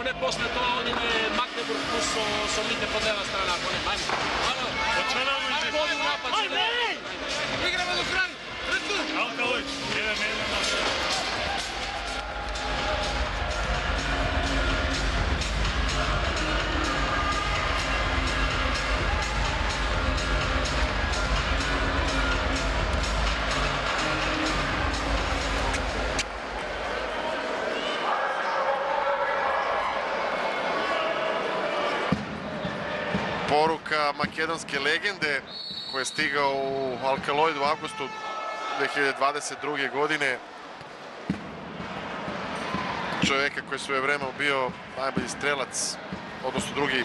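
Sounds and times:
arena crowd noise: 0.0s - 47.0s
loud rhythmic music: 7.1s - 27.0s.

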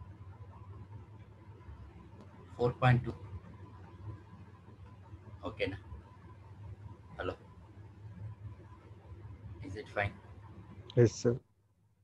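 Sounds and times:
low steady hum: 0.0s - 12.0s
man saying a word: 11.0s - 11.4s.

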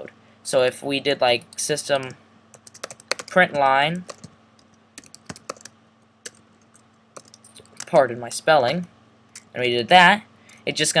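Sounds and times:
computer keyboard typing: 2.5s - 8.0s.

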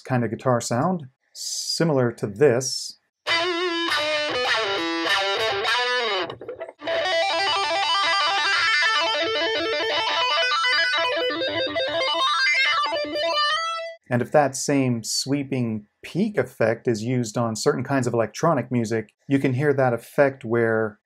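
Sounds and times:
distorted electric guitar with wah: 3.3s - 14.0s.

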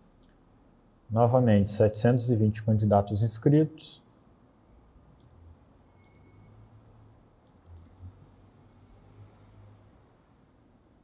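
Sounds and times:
low room hum: 0.0s - 11.0s
computer mouse clicks: 5.1s - 6.6s, 7.4s - 8.3s, 10.1s - 10.3s.

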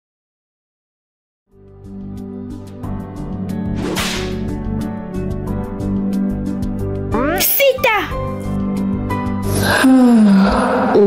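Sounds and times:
background music with steady beat: 1.5s - 9.5s.

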